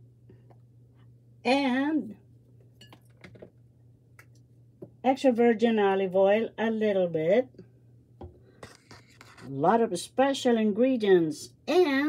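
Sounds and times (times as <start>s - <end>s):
low steady hum: 0.0s - 12.0s
dishes clinking: 2.8s - 3.4s.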